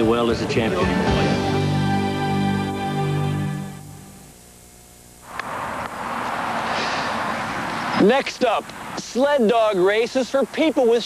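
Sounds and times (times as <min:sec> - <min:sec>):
background music: 0:00.0 - 0:04.2
wind hiss: 0:05.2 - 0:11.0.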